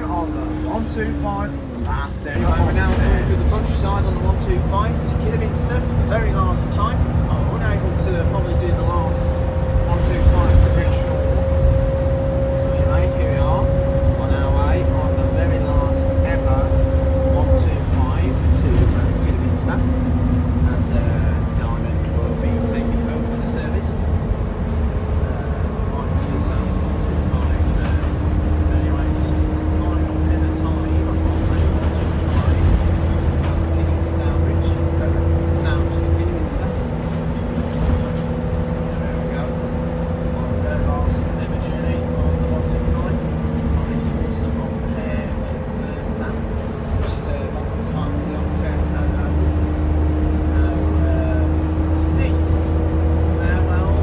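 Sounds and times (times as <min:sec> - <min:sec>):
bus drivetrain rumble: 0:00.0 - 0:54.0
bus motor whine: 0:00.0 - 0:54.0.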